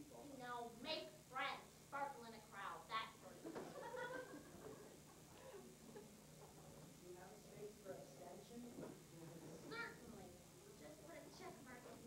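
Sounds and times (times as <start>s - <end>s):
quiet murmur: 0.0s - 12.0s.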